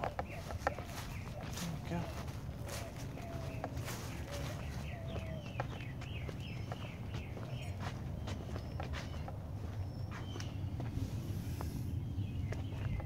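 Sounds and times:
footsteps on concrete: 0:00.0 - 0:11.8, 0:12.4 - 0:13.0
bird chirping: 0:00.0 - 0:13.0.

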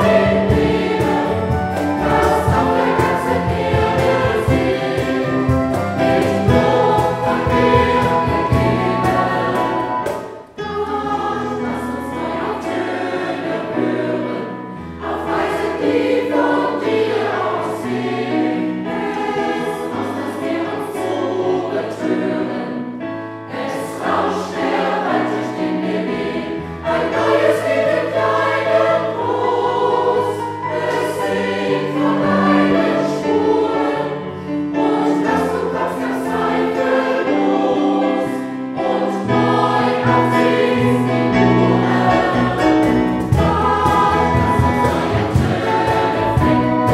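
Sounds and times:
instrumental accompaniment low notes: 0:00.0 - 0:13.1, 0:38.9 - 0:46.9
choir singing in harmony: 0:00.0 - 0:46.9.

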